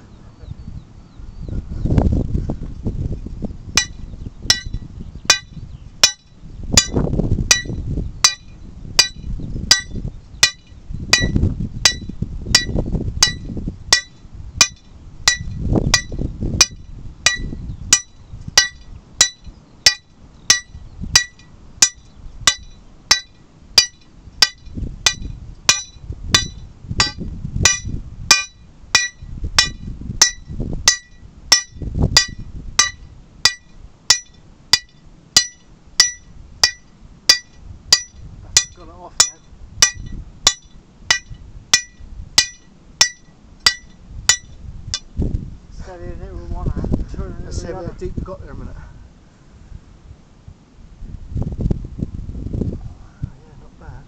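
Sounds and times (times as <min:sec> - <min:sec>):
hammer striking steel drill rod: 0:03.8 - 0:45.1.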